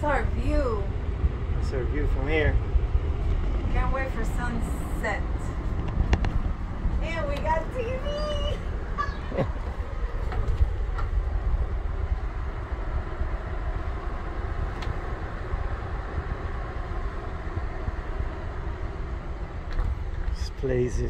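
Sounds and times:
wind buffeting microphone: 0.0s - 21.0s.

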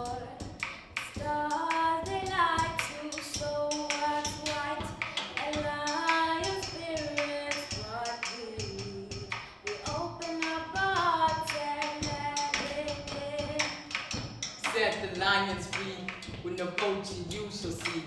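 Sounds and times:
drum struck with a stick: 0.0s - 18.0s
young voices singing: 0.0s - 18.0s.

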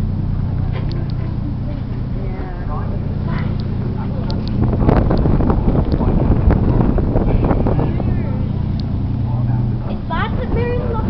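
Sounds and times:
ferry engine drone: 0.0s - 11.0s.

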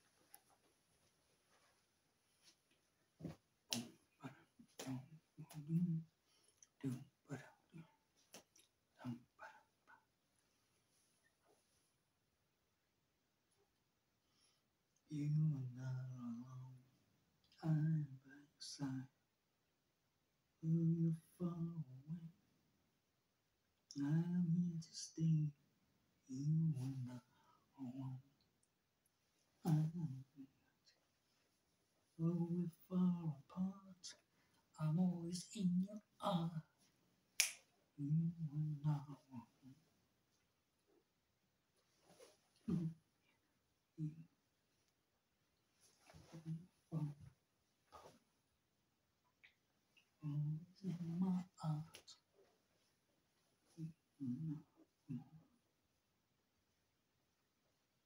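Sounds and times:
man singing softly: 3.2s - 8.0s, 9.0s - 10.0s, 15.0s - 19.3s, 20.6s - 22.5s, 23.9s - 28.5s, 29.6s - 31.0s, 32.0s - 36.9s, 37.9s - 39.9s, 43.9s - 44.4s, 46.0s - 47.3s, 50.1s - 52.3s, 53.7s - 55.5s
finger snap: 3.7s - 4.0s, 37.4s - 37.7s.

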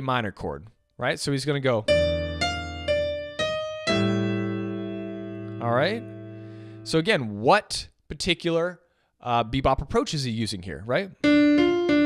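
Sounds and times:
slow jazz piano line: 1.9s - 6.9s.

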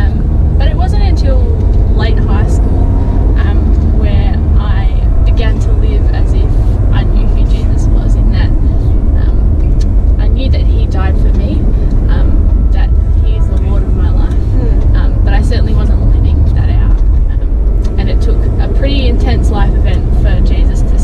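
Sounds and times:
woman talking: 0.0s - 9.6s, 10.2s - 21.0s
car cabin road noise: 0.0s - 21.0s.

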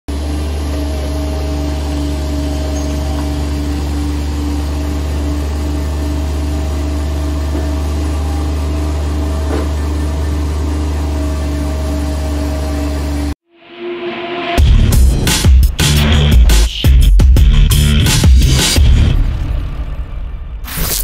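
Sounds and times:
diesel engine running: 0.1s - 13.4s, 14.6s - 20.7s.

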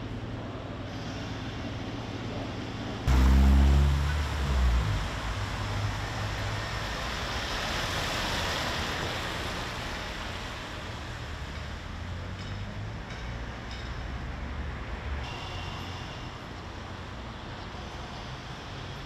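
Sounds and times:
tyre and road noise: 0.0s - 19.0s
vehicle engine passing: 3.1s - 8.6s.

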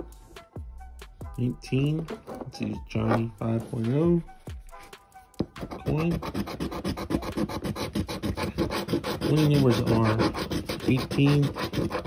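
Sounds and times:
scratching a lottery ticket: 5.7s - 12.0s.

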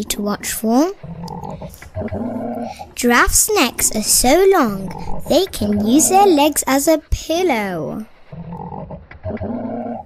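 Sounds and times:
lion growling: 1.0s - 3.0s, 4.8s - 6.1s, 8.3s - 10.0s.

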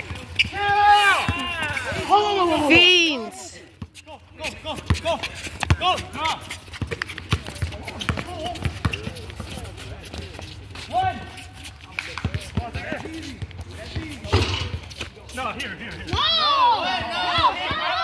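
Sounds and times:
players shouting: 0.0s - 3.6s, 16.0s - 18.0s
basketball bouncing on hard court: 6.8s - 9.5s.

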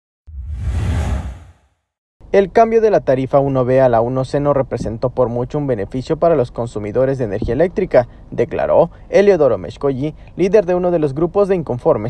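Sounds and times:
deep rumble: 0.3s - 1.6s
whoosh sound effect: 0.3s - 1.8s.

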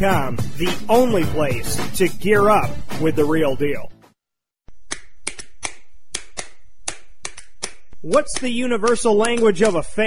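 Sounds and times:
hands clapping: 4.9s - 9.9s.

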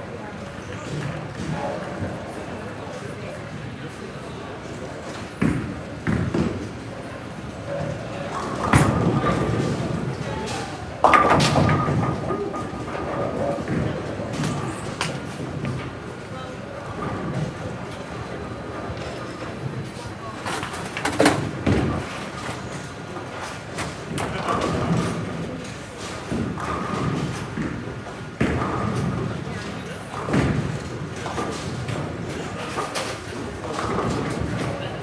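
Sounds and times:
background chatter: 0.0s - 35.0s
bowling balls and pins crashing: 8.2s - 15.8s.

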